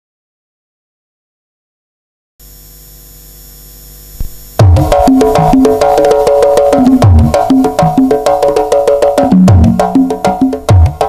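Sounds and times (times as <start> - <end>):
electrical mains hum with hiss: 2.4 - 11.0.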